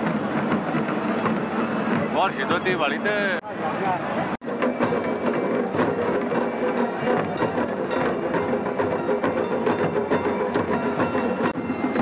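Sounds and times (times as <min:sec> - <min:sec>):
drums beating: 0:00.0 - 0:03.4, 0:04.4 - 0:12.0
cymbals beating: 0:04.4 - 0:12.0.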